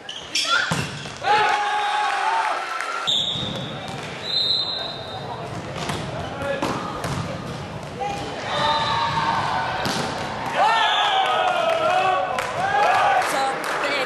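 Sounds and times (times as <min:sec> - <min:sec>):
volleyball hits echoing in gym: 0:00.4 - 0:01.7, 0:03.0 - 0:13.2
referee's whistle blasts: 0:03.1 - 0:03.5, 0:04.2 - 0:05.1.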